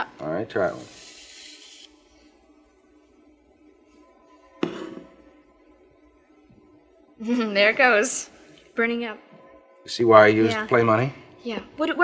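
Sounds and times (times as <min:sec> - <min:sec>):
metal rod sliding hiss: 0:00.8 - 0:02.0
low steady hum: 0:01.9 - 0:12.0.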